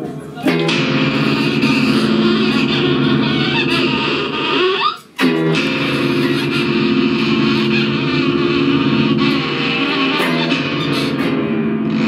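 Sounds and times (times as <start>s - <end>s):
pitch sliding upward: 0.0s - 12.0s.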